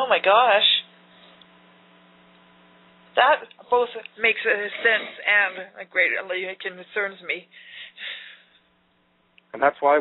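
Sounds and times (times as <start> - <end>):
faint electrical hum with hiss: 0.0 - 10.0.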